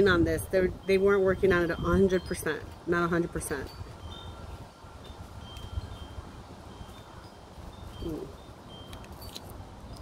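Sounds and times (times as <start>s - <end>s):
wind rumble on microphone: 0.0s - 10.0s
faint high chime tones: 0.9s - 10.0s.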